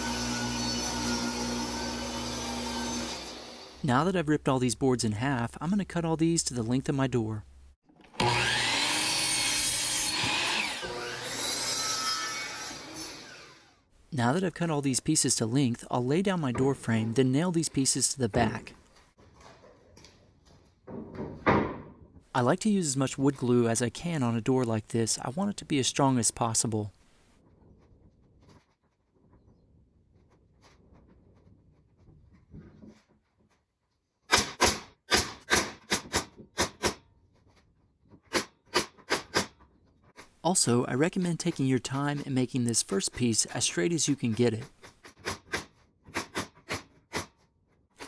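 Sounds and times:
miter saw cutting wood: 0:00.0 - 0:03.8, 0:08.1 - 0:13.8.

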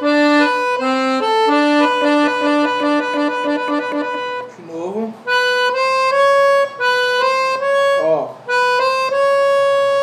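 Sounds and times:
accordion melody: 0:00.0 - 0:10.0.

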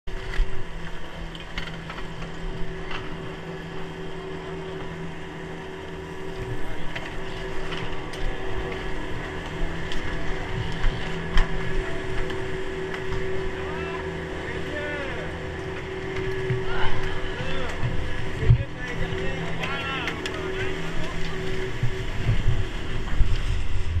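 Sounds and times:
chairlift machinery humming: 0:00.1 - 0:24.0.

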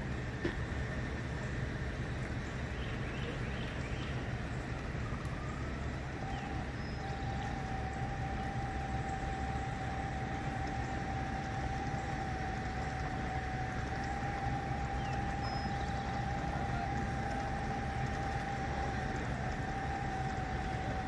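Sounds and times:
high-pitched whine: 0:00.0 - 0:21.0
vehicle engines idling: 0:00.0 - 0:21.0.

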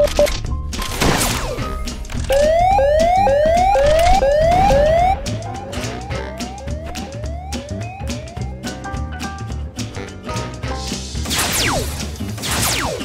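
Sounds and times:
background music with percussion: 0:01.6 - 0:12.4
electronic whooping alarm: 0:02.3 - 0:08.5.

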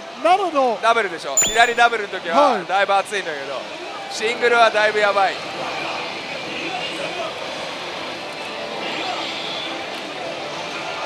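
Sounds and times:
slot machines electronic sounds: 0:01.4 - 0:02.1.

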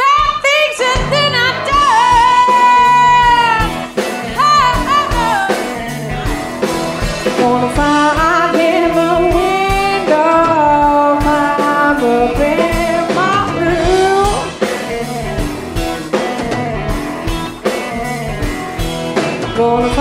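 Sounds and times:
drums: 0:00.0 - 0:20.0
electric guitars: 0:00.0 - 0:20.0
sliding bending guitar lead: 0:00.8 - 0:20.0.

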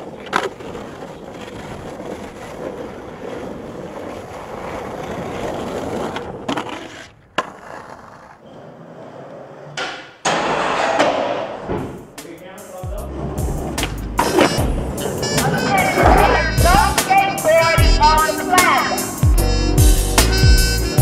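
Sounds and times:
skateboard clacks: 0:00.0 - 0:11.7, 0:13.0 - 0:18.7
skateboard wheels rolling on pavement: 0:00.0 - 0:21.0.

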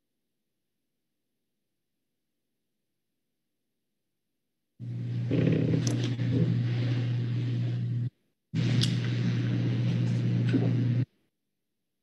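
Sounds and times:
low microphone hum: 0:04.8 - 0:11.1.

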